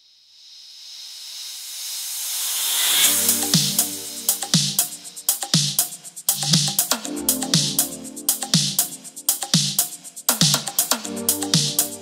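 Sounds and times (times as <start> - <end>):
synthesized white-noise swell: 0.0 - 6.3.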